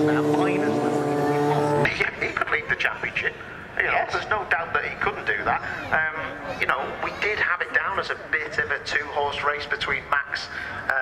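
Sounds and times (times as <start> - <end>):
loudspeaker race commentary: 0.0 - 11.0.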